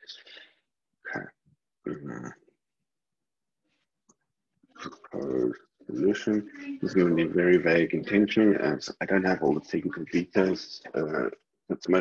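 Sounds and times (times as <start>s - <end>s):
man's voice: 5.1s - 12.0s.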